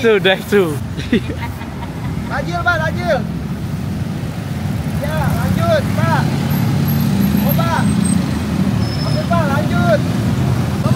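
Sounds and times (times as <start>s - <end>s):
road traffic rumble: 0.0s - 10.9s.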